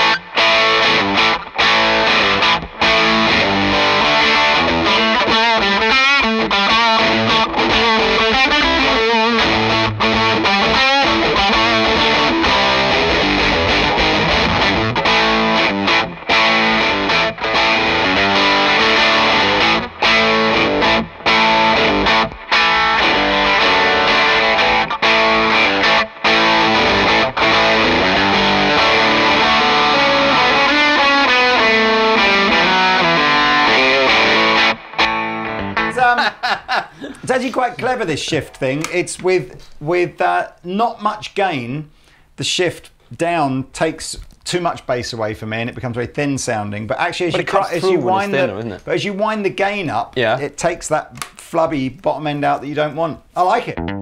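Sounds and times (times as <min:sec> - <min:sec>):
distorted electric guitar: 0:00.0 - 0:37.2, 0:53.6 - 0:54.0.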